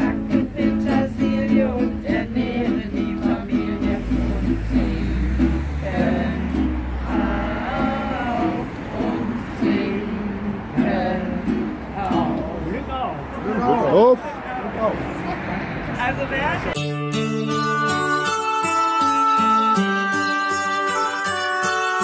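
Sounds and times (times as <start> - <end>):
acoustic guitar strumming: 0.0 - 12.7, 16.8 - 22.0
group of voices singing: 0.0 - 12.7.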